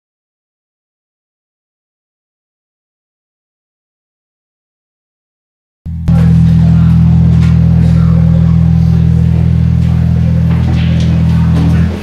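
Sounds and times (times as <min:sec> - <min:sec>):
rock band sustained chord: 0:05.9 - 0:12.0.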